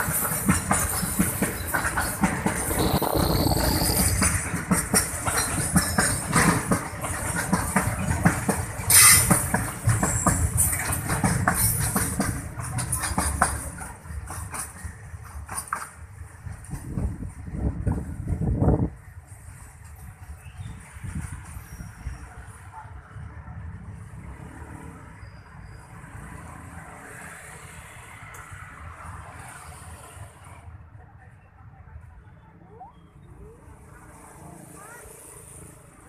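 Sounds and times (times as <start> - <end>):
wheels clicking over rail joints: 0.0 - 18.3
freight train rumbling: 0.0 - 36.0.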